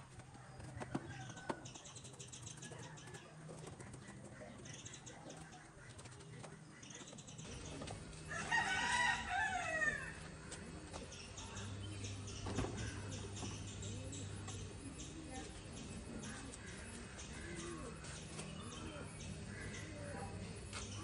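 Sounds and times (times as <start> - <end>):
rooster crowing: 8.2 - 10.2.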